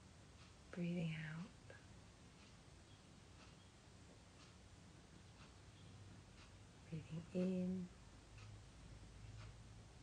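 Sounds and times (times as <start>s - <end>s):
woman speaking softly: 0.7s - 1.9s, 6.8s - 8.0s.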